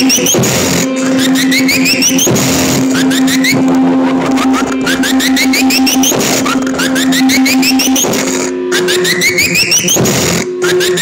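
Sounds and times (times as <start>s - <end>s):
low synthesizer drone: 0.0s - 11.0s
rapid high clicking: 0.0s - 11.0s.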